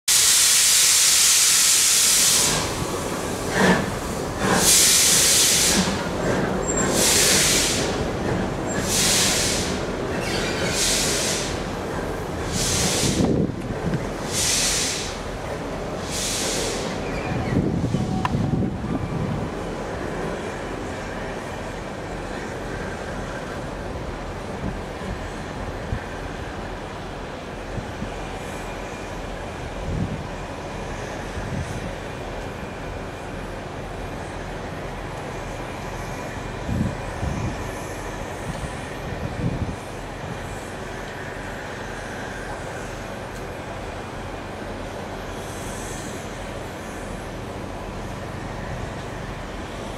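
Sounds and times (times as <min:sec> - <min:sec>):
steam locomotive hissing: 0:00.1 - 0:49.9.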